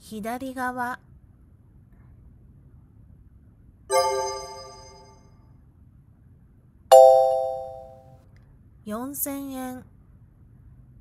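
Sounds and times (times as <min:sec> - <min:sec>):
electronic bell-like chime: 0:03.9 - 0:05.2, 0:06.9 - 0:08.0.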